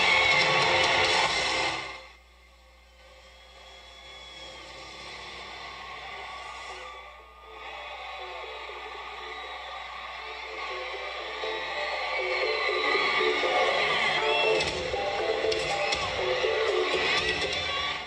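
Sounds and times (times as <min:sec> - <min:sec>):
music from boombox speakers: 0:00.0 - 0:02.2, 0:02.8 - 0:18.0.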